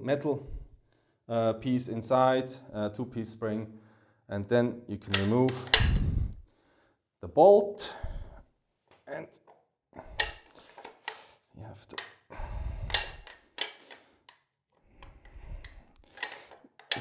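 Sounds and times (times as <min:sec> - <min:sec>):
rifle bolt metal clicks and scrapes: 0:05.1 - 0:06.4, 0:10.0 - 0:17.0.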